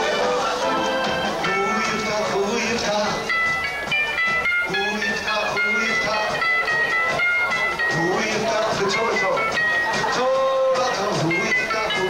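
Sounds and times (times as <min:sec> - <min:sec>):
harmonica holding notes: 0:00.0 - 0:12.0
live rock band playing: 0:00.0 - 0:12.0.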